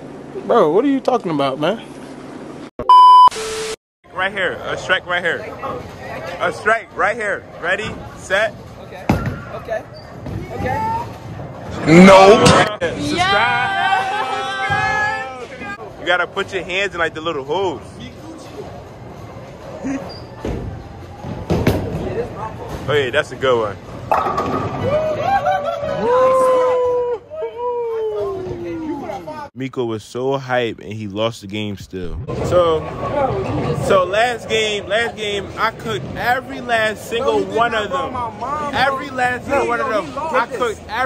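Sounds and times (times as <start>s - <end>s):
test-tone beep: 2.8s - 3.8s.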